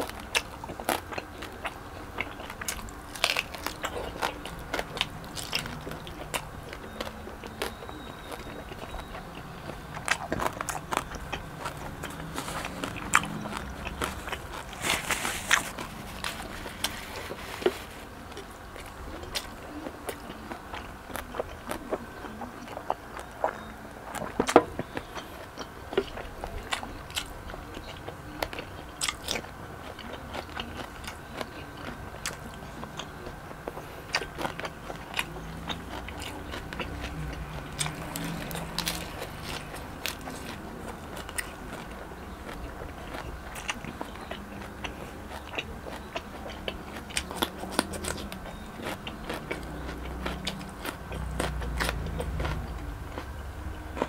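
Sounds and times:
chewing crispy pork crackling: 0.0s - 54.0s.

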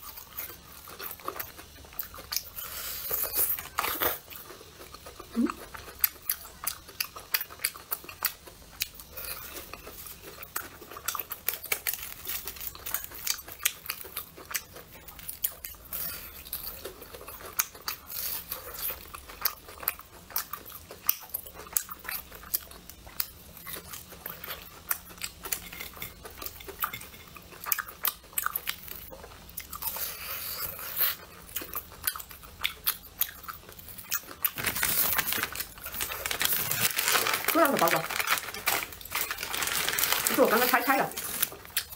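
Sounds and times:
chewing and crunching: 0.0s - 41.9s
plastic package crinkling: 34.2s - 41.9s.

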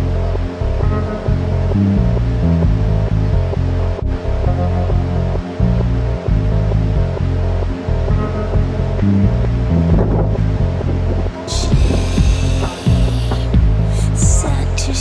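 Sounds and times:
music with deep bass line: 0.0s - 15.0s.

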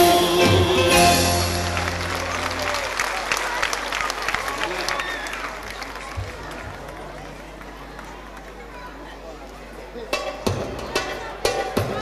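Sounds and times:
bouzoukis and guitars chord: 0.0s - 2.8s
audience applause: 1.1s - 8.7s.

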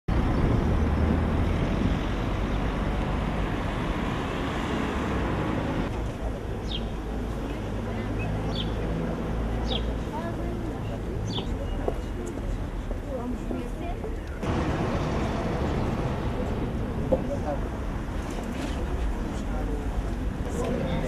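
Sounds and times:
low traffic rumble: 0.1s - 21.0s.

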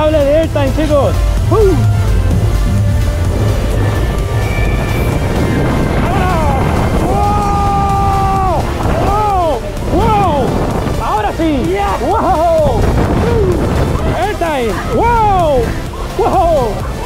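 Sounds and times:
wind rushing over microphone: 0.0s - 17.0s
riders yelling: 4.4s - 17.0s.

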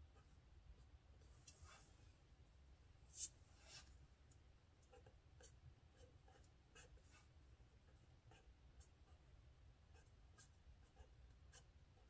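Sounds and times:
pen scratching on paper: 4.9s - 7.3s, 7.9s - 9.3s, 9.9s - 12.0s.

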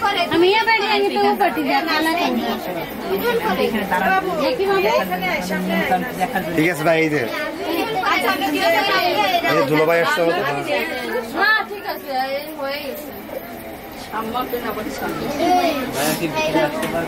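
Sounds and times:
crowd chatter: 0.0s - 17.0s.

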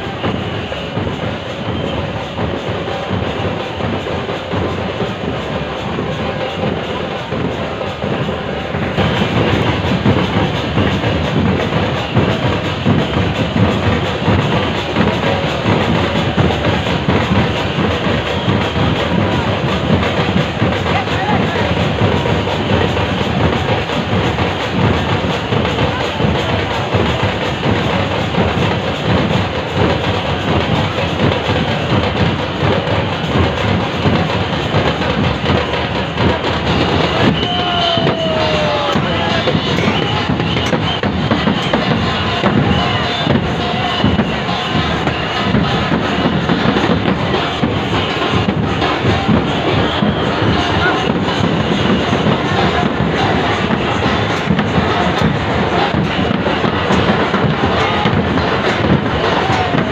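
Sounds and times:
crowd noise: 0.0s - 59.9s
fast drumming and clanging percussion: 0.0s - 59.9s.

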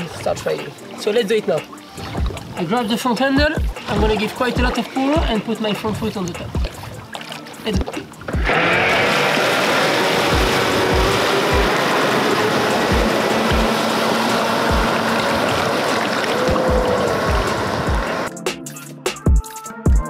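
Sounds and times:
music with steady beat: 0.4s - 8.6s, 10.3s - 11.8s, 12.7s - 13.8s, 14.7s - 15.0s, 16.4s - 20.0s
rush of water and spray: 3.8s - 18.3s.

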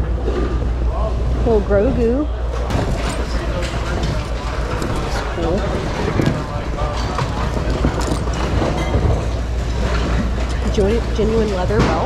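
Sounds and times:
steady low rumble: 0.0s - 12.0s
items rummaged through in a bin: 2.7s - 12.0s.

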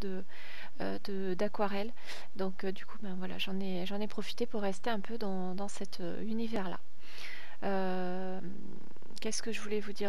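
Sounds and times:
woman breathing in: 0.3s - 0.8s, 7.0s - 7.6s.

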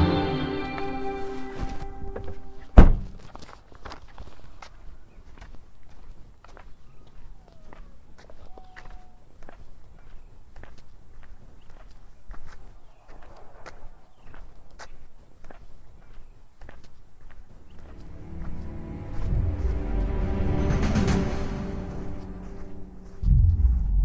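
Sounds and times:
music: 0.0s - 2.6s, 17.8s - 24.0s
footsteps on asphalt: 0.7s - 20.4s, 21.9s - 24.0s
car door shutting: 2.8s - 3.2s.

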